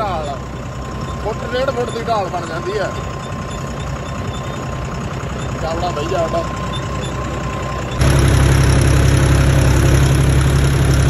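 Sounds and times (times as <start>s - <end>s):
constant thin high tone: 0.0s - 8.1s
tractor diesel engine running: 0.0s - 11.0s.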